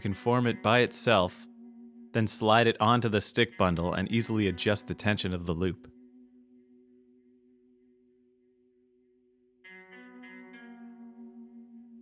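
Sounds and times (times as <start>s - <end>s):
plucked guitar chord: 0.0s - 12.0s
quiet guitar music: 0.0s - 12.0s.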